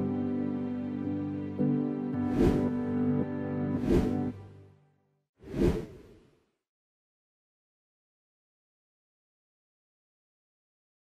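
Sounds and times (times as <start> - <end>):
whoosh: 2.3 - 2.7, 3.8 - 4.4, 5.4 - 6.2.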